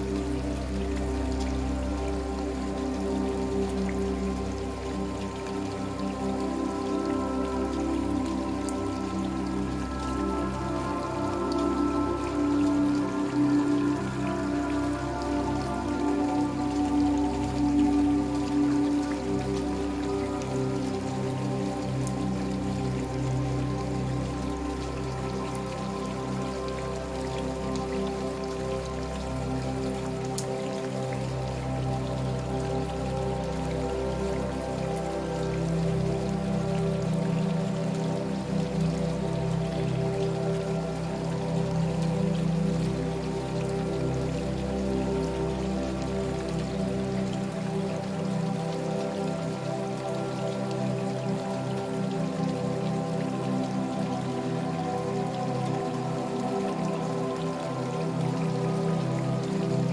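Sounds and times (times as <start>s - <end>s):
ambient new-age music: 0.0s - 59.9s
rain falling: 0.0s - 59.9s.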